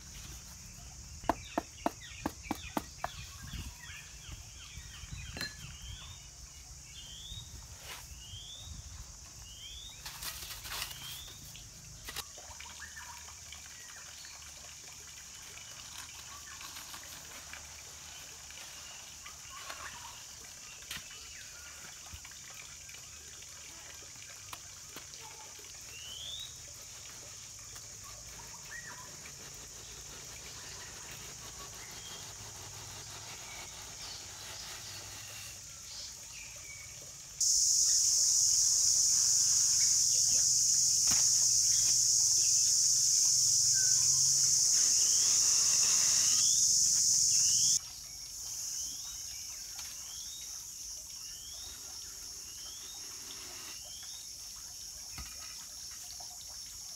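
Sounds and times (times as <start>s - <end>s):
high-pitched insect drone: 37.4s - 47.8s.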